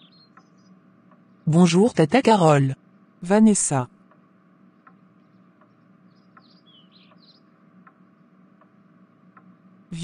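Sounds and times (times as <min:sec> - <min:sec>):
bird chirps: 0:00.0 - 0:01.5, 0:04.8 - 0:08.3
steady low hum: 0:00.0 - 0:10.0
soft regular ticks: 0:00.2 - 0:01.4, 0:04.0 - 0:09.8.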